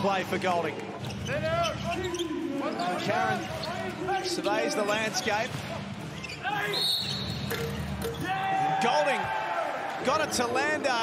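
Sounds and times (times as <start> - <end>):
shoe squeak on court: 1.0 - 5.5, 6.1 - 8.2.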